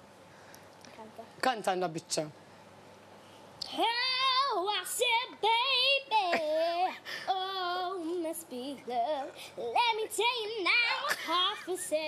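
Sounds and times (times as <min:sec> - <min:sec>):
girl singing unaccompanied: 0:03.6 - 0:12.0.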